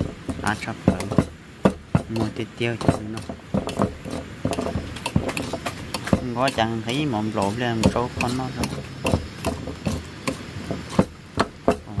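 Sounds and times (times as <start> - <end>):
pestle knocking ceramic bowl: 0.0 - 12.0.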